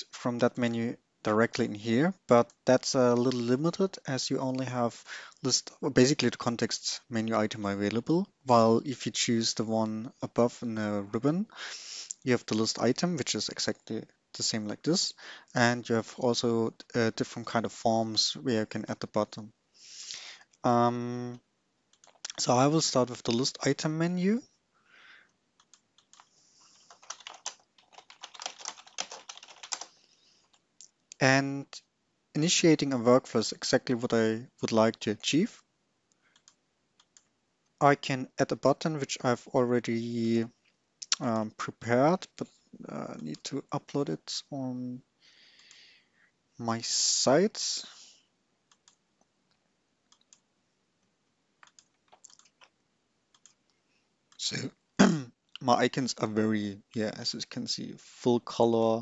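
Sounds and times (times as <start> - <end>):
computer mouse clicks: 25.6 - 26.3, 36.3 - 37.3, 48.7 - 49.0, 51.6 - 52.7, 53.3 - 53.6.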